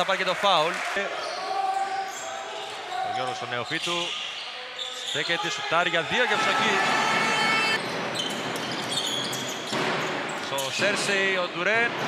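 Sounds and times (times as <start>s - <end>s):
crowd noise: 0.0s - 12.0s
shoe squeaks on hardwood floor: 1.2s - 5.6s, 7.8s - 10.8s.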